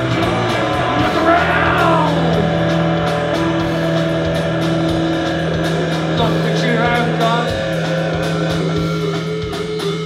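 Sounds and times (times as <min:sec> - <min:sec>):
bass guitar: 0:00.0 - 0:10.0
distorted electric guitar: 0:00.0 - 0:10.0
drums with cymbal hits: 0:00.0 - 0:10.0.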